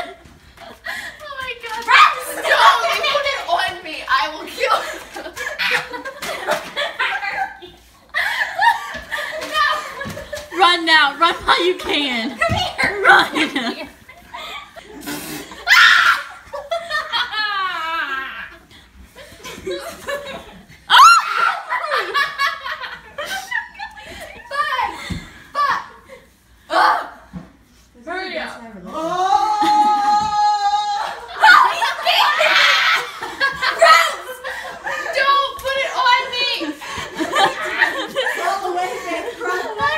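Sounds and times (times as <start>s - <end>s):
young women laughing: 4.6s - 10.6s, 11.6s - 26.3s, 29.4s - 39.9s.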